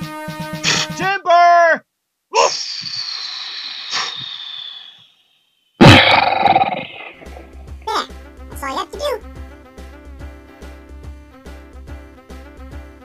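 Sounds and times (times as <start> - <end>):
music: 0.0 - 1.1, 7.2 - 13.0
descending pitch slide: 2.5 - 5.2, 5.8 - 7.8
loud crash: 5.8 - 7.7.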